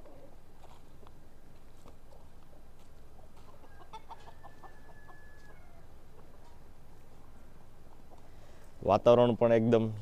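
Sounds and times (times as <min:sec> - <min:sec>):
chickens clucking: 0:00.0 - 0:01.2, 0:01.8 - 0:08.7.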